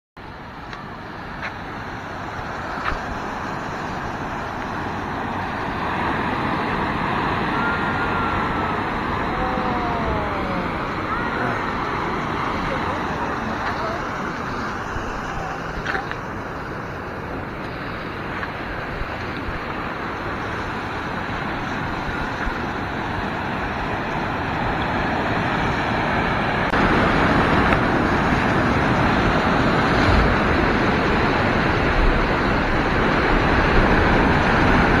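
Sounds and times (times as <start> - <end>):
surf washing over rocky shore: 0.3 - 35.0
wind on microphone: 0.4 - 35.0.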